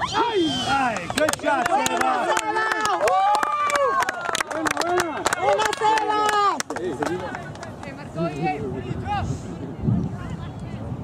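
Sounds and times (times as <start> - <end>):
spectators shouting and cheering: 0.0 - 9.4
handclaps: 0.9 - 8.0.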